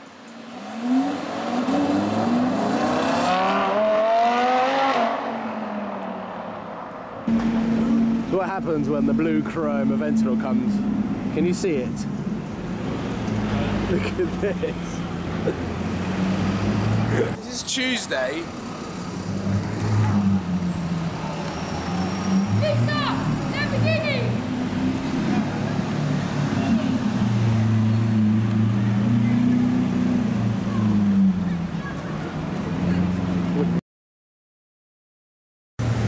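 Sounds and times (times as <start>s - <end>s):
street traffic engine hum: 0.0s - 33.8s, 35.8s - 36.0s.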